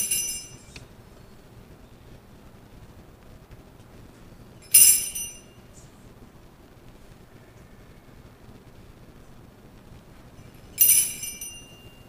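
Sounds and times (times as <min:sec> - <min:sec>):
altar bell ringing: 0:00.0 - 0:00.8, 0:04.6 - 0:05.7, 0:10.4 - 0:12.0.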